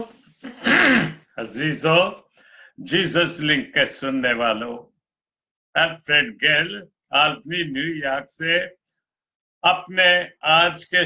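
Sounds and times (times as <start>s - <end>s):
man clearing his throat: 0.4s - 1.2s
man talking: 1.2s - 2.2s, 2.8s - 4.9s, 5.8s - 8.7s, 9.6s - 11.0s.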